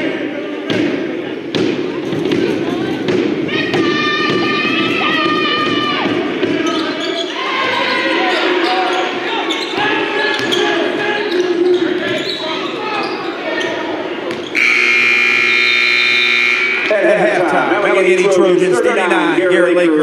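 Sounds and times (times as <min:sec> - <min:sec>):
players' voices: 0:00.0 - 0:20.0
scoreboard buzzer blast: 0:14.6 - 0:17.0.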